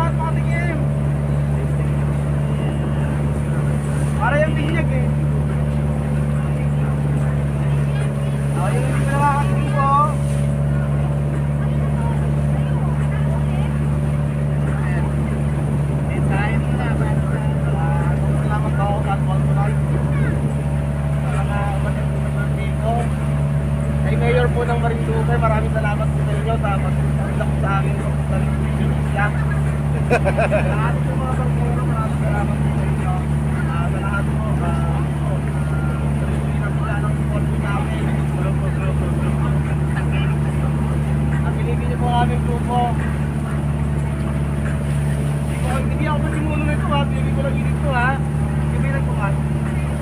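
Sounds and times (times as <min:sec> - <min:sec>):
boat engine droning: 0:00.0 - 0:50.0
passenger chatter: 0:00.0 - 0:50.0.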